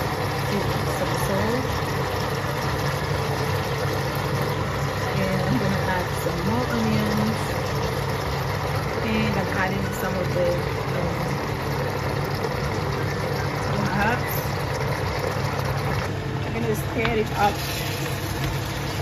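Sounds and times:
meat and onions sizzling in oil: 0:00.0 - 0:19.0.

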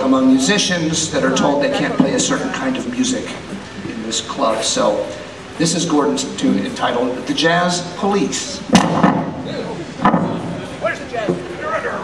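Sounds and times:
indistinct chatter of voices: 0:00.0 - 0:12.0
sharp knock: 0:08.7 - 0:09.4.

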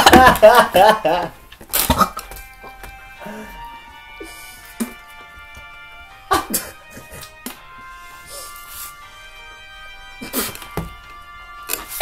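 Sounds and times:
man laughing: 0:00.0 - 0:01.4, 0:06.2 - 0:07.3
background music: 0:00.0 - 0:12.0.

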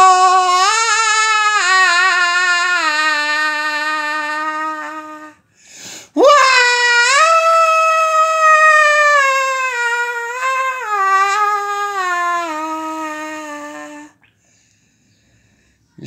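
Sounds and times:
man singing long high note: 0:00.0 - 0:05.4.

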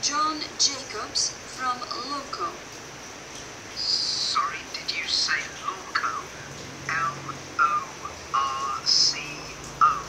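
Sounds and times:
telephone conversation through small speaker: 0:00.0 - 0:02.6, 0:03.8 - 0:10.0.

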